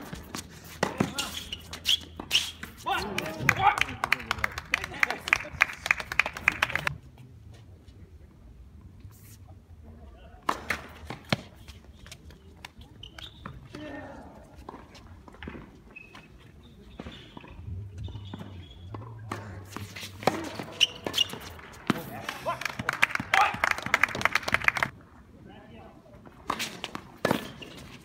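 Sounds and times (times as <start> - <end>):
tennis ball hit by rackets: 0.0 - 3.4, 10.4 - 11.6, 16.9 - 22.2, 26.4 - 27.8
people shouting and clapping: 2.8 - 6.9, 21.8 - 24.9
ball bouncing on hard court: 17.0 - 22.1.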